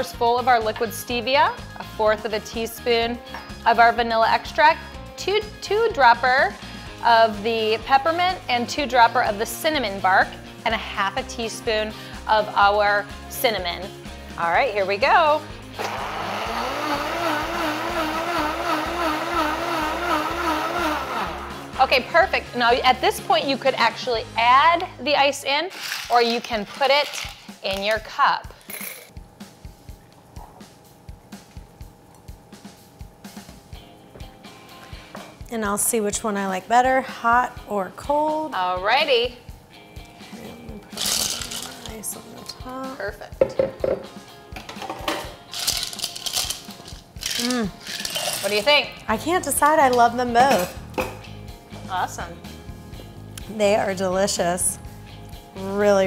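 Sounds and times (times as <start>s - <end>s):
blender motor running: 15.8s - 21.8s.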